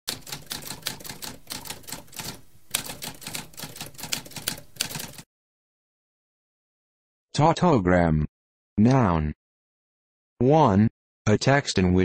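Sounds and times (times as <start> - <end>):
typewriter keys clacking: 0.1 - 5.2.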